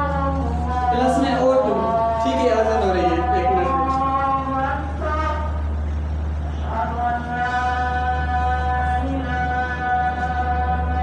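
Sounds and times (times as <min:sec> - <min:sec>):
person chanting: 0:00.0 - 0:05.7, 0:06.6 - 0:11.0.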